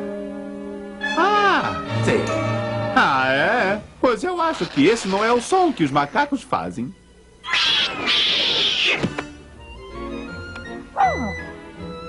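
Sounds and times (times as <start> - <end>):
cartoon monkey screeching: 7.4 - 9.1, 11.0 - 11.4.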